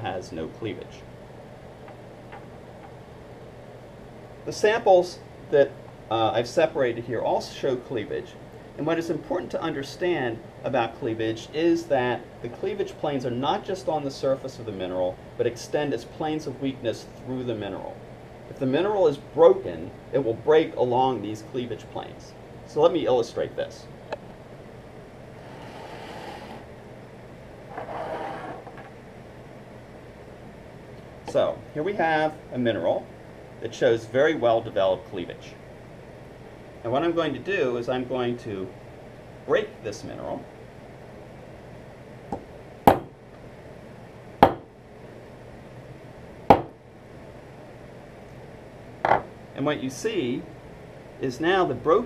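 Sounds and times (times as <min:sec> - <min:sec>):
air-conditioning hum: 0:00.0 - 0:52.0
stone slab sliding on wood: 0:25.4 - 0:26.6, 0:27.7 - 0:28.9.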